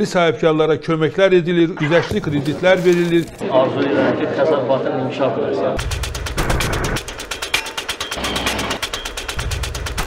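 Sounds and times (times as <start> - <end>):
fast mechanical ticking: 5.8 - 10.0.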